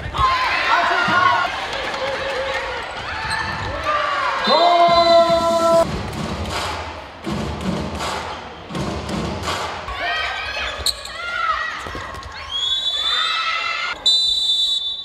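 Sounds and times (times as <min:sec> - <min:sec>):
crowd noise: 0:00.0 - 0:15.0.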